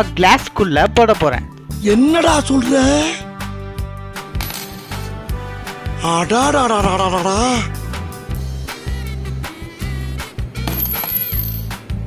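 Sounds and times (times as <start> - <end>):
background music: 0.0 - 12.0
coin clinking on table: 4.4 - 5.1, 10.6 - 11.8.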